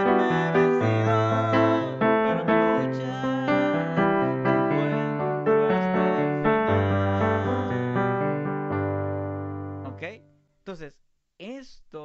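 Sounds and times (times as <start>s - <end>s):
electronic keyboard playing chords: 0.0s - 10.1s
man speaking: 9.8s - 12.0s.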